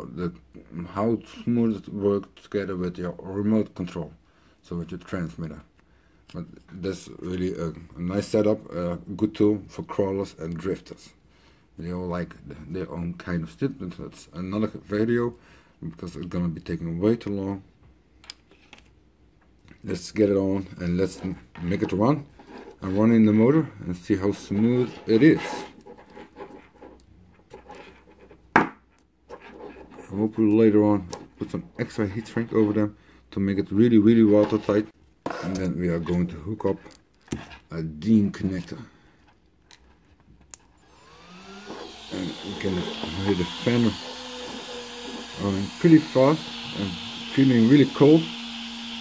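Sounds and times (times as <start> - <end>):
man talking: 0.0 - 5.7, 6.3 - 11.2, 11.8 - 17.7, 19.8 - 25.8, 30.0 - 36.9, 37.7 - 38.9, 42.1 - 44.1, 45.1 - 48.4
small cooling fan whirring: 40.8 - 49.0.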